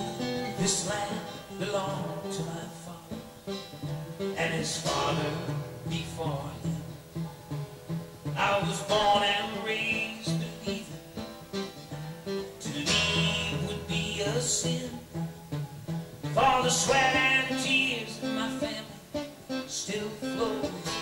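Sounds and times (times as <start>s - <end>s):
live country band: 0.0s - 21.0s
strummed acoustic guitar: 0.0s - 21.0s
sliding melody line: 3.8s - 21.0s.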